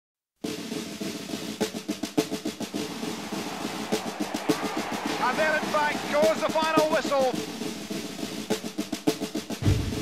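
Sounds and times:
snare drum roll: 0.4 - 10.0.

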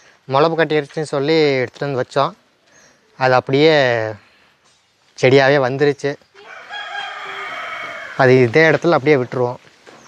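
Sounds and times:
rooster crowing: 6.4 - 8.4.

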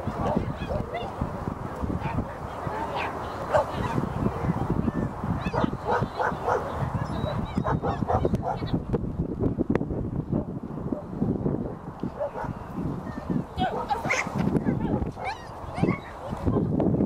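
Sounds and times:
crowd chatter: 0.0 - 9.2, 10.3 - 16.8
dogs barking: 3.0 - 4.0, 5.4 - 8.8, 12.2 - 12.6, 13.6 - 16.4.

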